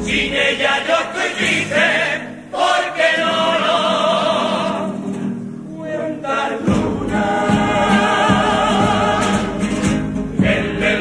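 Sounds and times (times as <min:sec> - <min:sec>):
choir singing in harmony: 0:00.0 - 0:11.0
instrumental accompaniment: 0:06.3 - 0:11.0
low beats: 0:06.6 - 0:11.0.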